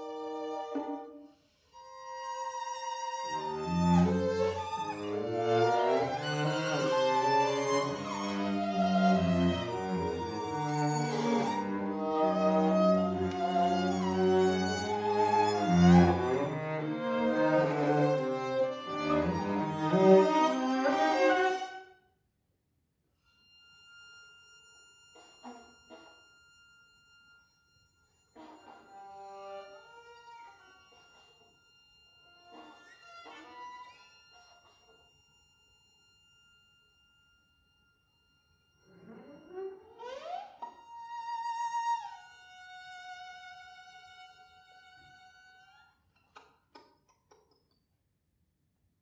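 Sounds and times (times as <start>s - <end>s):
bowed strings: 0.0s - 22.0s.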